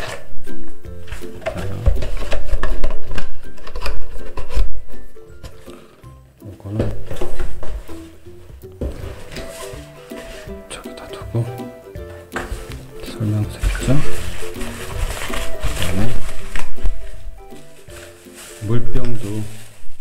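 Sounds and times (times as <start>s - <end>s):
plastic wrap rustling: 0.0s - 5.7s, 6.9s - 10.8s, 12.1s - 20.0s
background music: 0.0s - 20.0s
cardboard box rustling: 6.9s - 10.8s, 12.4s - 20.0s.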